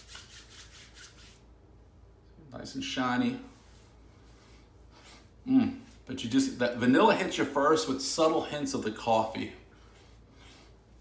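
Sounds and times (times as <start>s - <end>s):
oily palms rubbing together: 0.0s - 1.5s, 3.4s - 6.1s.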